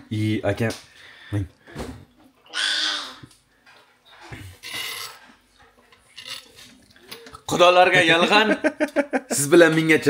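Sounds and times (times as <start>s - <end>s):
person slurping broth: 4.4s - 5.4s.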